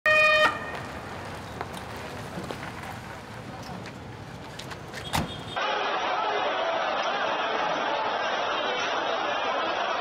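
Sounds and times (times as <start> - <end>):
vehicle horn honk: 0.1 - 0.8, 5.0 - 5.6
street background noise: 0.1 - 10.0.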